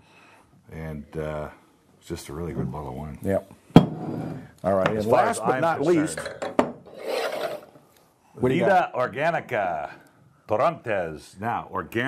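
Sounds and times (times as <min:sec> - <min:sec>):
bottle knocking on wooden counter: 0:03.8 - 0:04.2, 0:06.4 - 0:06.8
bottle sliding across wood: 0:06.9 - 0:07.8.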